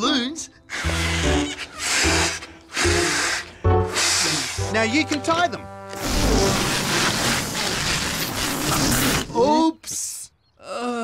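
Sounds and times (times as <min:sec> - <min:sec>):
background music: 0:00.0 - 0:07.1
breath puffs inflating balloons: 0:00.7 - 0:04.8, 0:06.0 - 0:09.3.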